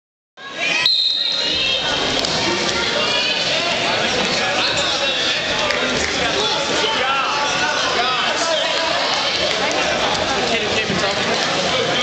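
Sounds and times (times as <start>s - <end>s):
crowd chatter: 0.4s - 12.0s
referee's whistle: 0.7s - 1.6s.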